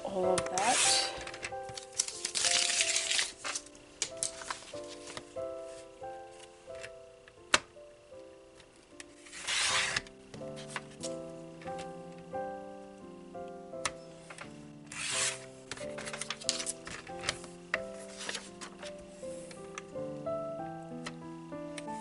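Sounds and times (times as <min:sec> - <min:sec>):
gentle melodic music: 0:00.0 - 0:22.0.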